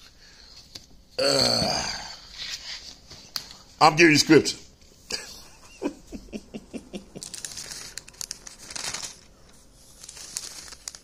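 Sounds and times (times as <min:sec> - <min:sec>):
thin pages rustling: 0:07.2 - 0:11.0.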